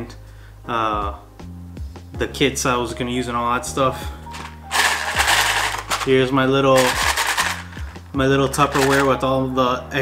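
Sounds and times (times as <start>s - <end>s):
plastic parts rattling in a tub: 4.3s - 9.2s.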